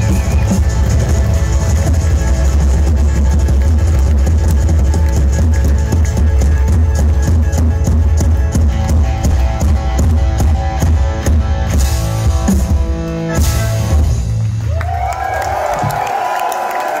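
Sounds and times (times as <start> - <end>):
drum kit beat: 0.0 - 14.5
electric guitars: 0.0 - 14.8
bass guitar: 0.0 - 15.4.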